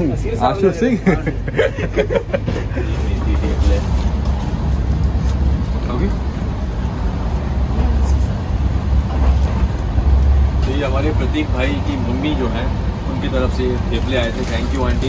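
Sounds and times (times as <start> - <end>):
train running rumble: 0.0 - 15.0.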